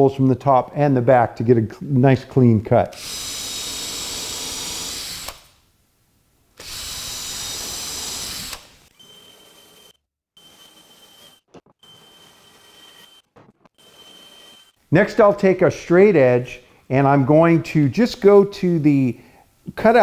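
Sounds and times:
cordless drill boring into wood: 0:02.9 - 0:05.6, 0:06.6 - 0:14.8.

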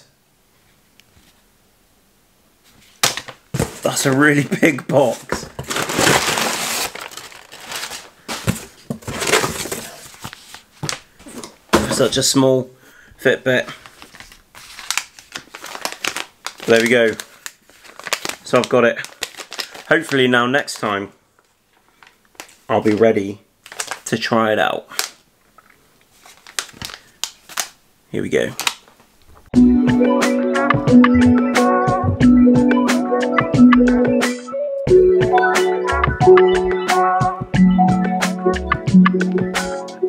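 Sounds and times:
packing paper crinkling and rustling: 0:02.8 - 0:12.3, 0:13.6 - 0:24.3, 0:24.9 - 0:27.8, 0:28.4 - 0:29.5.

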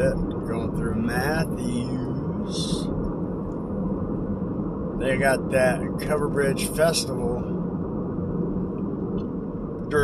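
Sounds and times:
car engine and tyre noise: 0:00.0 - 0:10.0
faint hum: 0:00.0 - 0:10.0.

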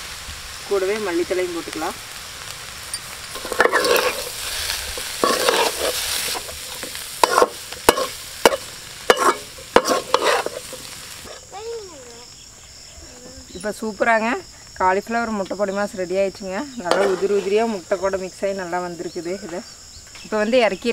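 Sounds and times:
food sizzling in a metal pan: 0:00.0 - 0:20.9
metal spatula scraping a pan: 0:03.0 - 0:11.5, 0:16.9 - 0:17.7.

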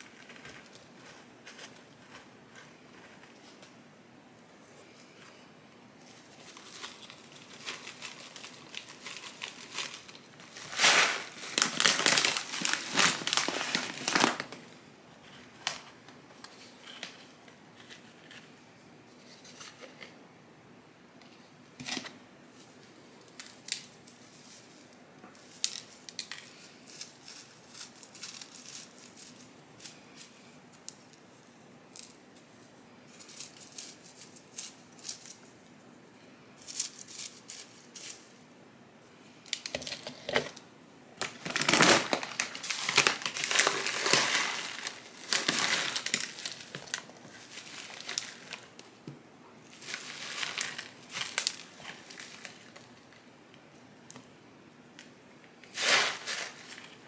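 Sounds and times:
plastic bag crinkling: 0:06.0 - 0:14.8, 0:25.4 - 0:30.4, 0:41.2 - 0:48.8, 0:49.7 - 0:53.2, 0:55.6 - 0:57.0
potting mix pouring: 0:06.4 - 0:14.6, 0:41.4 - 0:48.7, 0:55.7 - 0:56.8.

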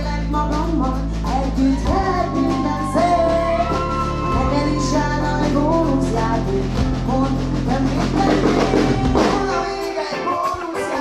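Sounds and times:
bass: 0:00.0 - 0:11.0
drums: 0:00.0 - 0:11.0
vocalists singing: 0:00.0 - 0:11.0.

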